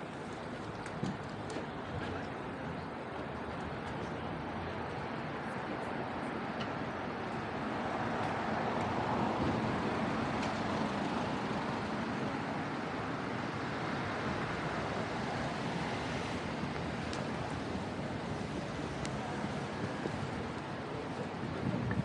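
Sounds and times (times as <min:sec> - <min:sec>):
cars passing on city road: 0:00.0 - 0:22.0.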